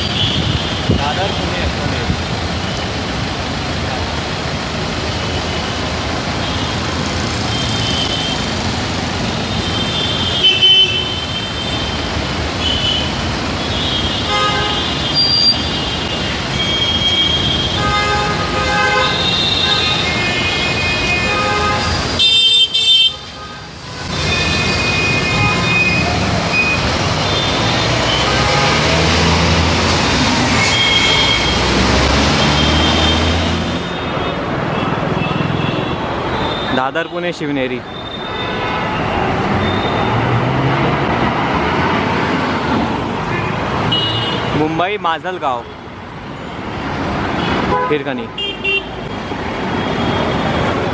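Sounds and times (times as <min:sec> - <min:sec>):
city street traffic: 0:00.0 - 0:50.9.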